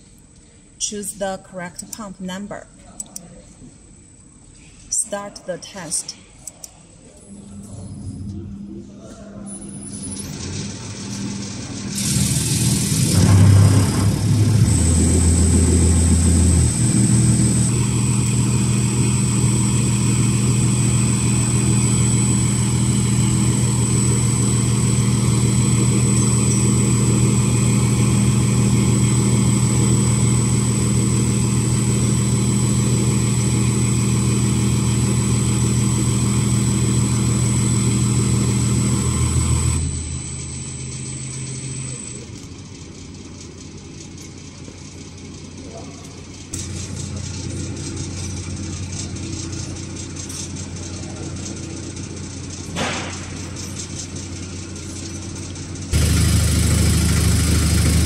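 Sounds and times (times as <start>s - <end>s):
pump test bench humming: 9.4s - 43.0s, 54.5s - 58.0s.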